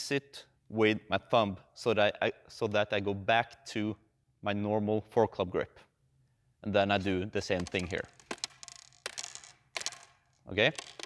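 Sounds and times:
juggling clubs clacking: 7.4 - 11.0.

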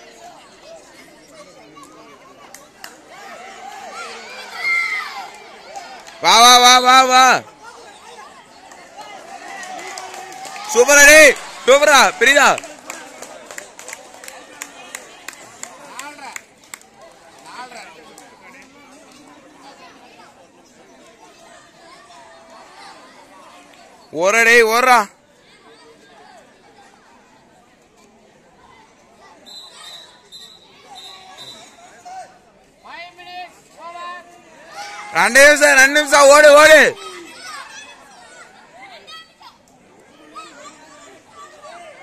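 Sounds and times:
overlapping faint chatter: 0.0 - 42.0.

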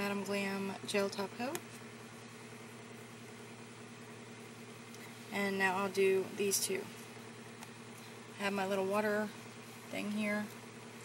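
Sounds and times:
faint background hum with hiss: 0.0 - 11.0.

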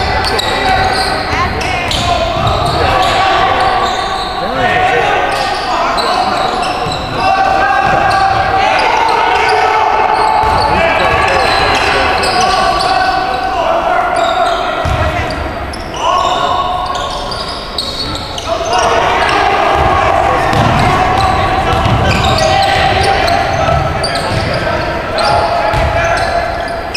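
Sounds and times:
voices of players and spectators: 0.0 - 26.9.

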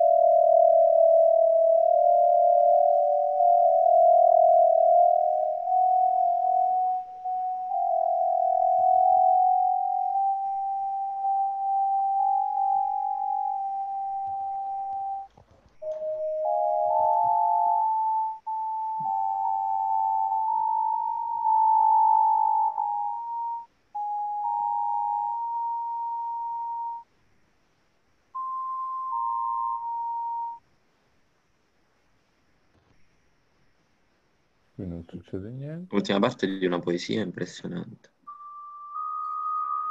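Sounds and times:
synthesized sine tones: 0.0 - 27.1, 28.4 - 30.6, 38.3 - 39.9.

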